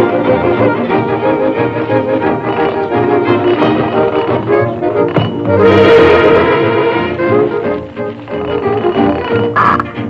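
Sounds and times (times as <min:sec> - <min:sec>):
orchestral cartoon music: 0:00.0 - 0:10.0.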